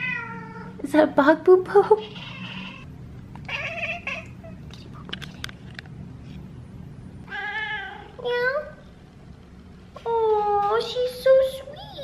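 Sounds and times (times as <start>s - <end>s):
cat meowing: 0.0s - 0.7s, 2.0s - 2.9s, 3.5s - 4.6s, 7.3s - 8.2s
cat chirping: 2.0s - 2.9s, 3.5s - 4.6s.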